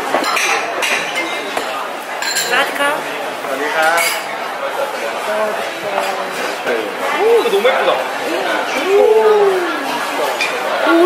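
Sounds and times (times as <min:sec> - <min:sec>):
cutlery and dishes clinking: 0:00.0 - 0:02.8, 0:03.6 - 0:04.4
indistinct chatter of diners: 0:00.0 - 0:11.0.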